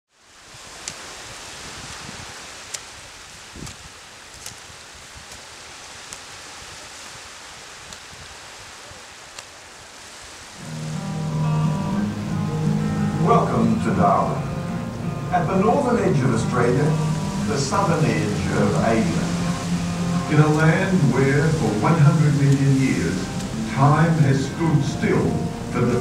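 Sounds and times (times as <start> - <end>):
gentle surf on a beach: 0.1 - 26.0
faint clicks: 0.8 - 1.0, 3.6 - 4.6, 9.3 - 9.6
low droning musical tone: 10.6 - 26.0.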